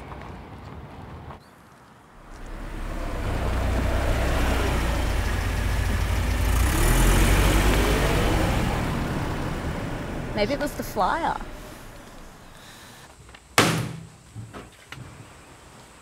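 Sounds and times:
vehicle driving past: 0:02.1 - 0:12.6.

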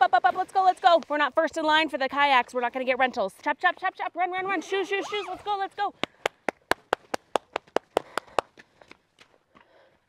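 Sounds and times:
person clapping hands quickly: 0:06.0 - 0:08.6.

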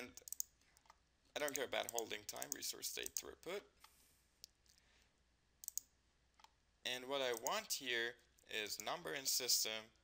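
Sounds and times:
computer mouse clicks: 0:00.2 - 0:04.8, 0:05.6 - 0:06.6, 0:07.3 - 0:07.6.

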